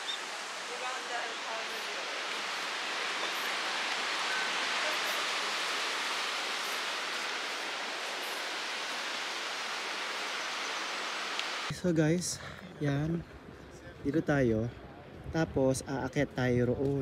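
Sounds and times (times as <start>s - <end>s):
river water rushing: 0.0s - 11.7s.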